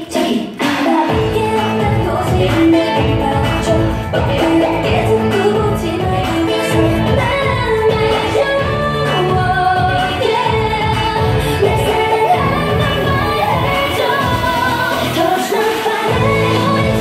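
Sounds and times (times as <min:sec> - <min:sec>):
pop dance song with female singing: 0:00.0 - 0:17.0.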